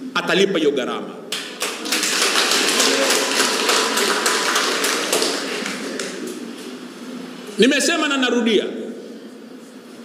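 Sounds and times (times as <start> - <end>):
audience clapping: 1.3 - 6.5.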